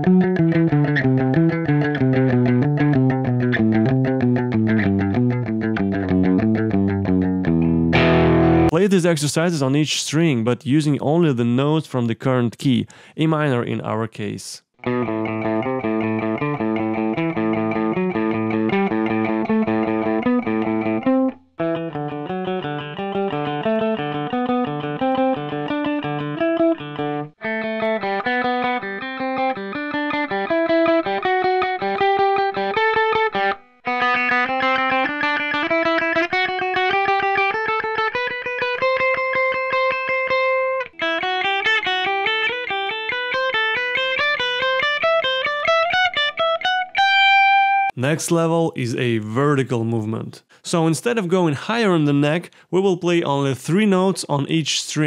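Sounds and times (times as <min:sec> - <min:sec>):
electric guitar scale runs: 0:14.9 - 0:21.3.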